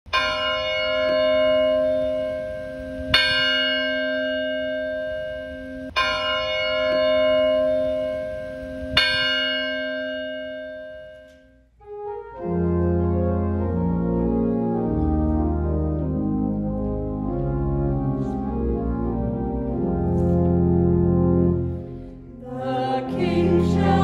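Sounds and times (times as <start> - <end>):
church bell tolling: 0.1 - 11.7.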